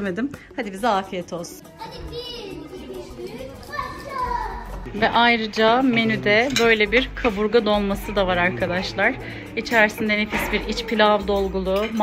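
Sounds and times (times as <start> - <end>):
child's voice: 1.7 - 4.8.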